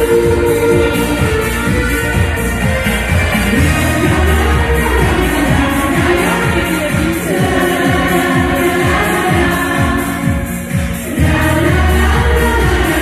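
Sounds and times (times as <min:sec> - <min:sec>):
women's vocal group singing: 0:00.0 - 0:02.4, 0:03.5 - 0:13.0
held bass note: 0:00.0 - 0:09.0
backing track with steady beat: 0:00.0 - 0:13.0.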